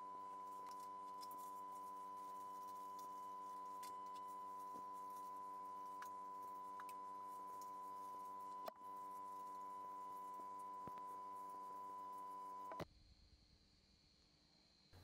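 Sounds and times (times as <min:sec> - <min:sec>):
electrical hum with high whine: 0:00.0 - 0:12.8.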